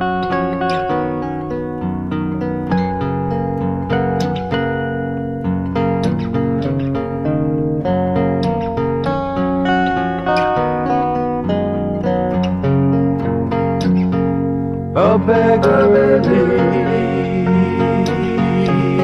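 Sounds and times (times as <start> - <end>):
guitars picking a melody: 0.0 - 19.0.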